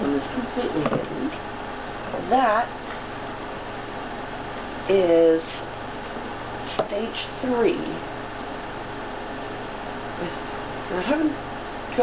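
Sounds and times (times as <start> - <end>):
person speaking: 0.0 - 1.4, 2.0 - 2.8, 10.2 - 12.0
background hum and hiss: 0.0 - 12.0.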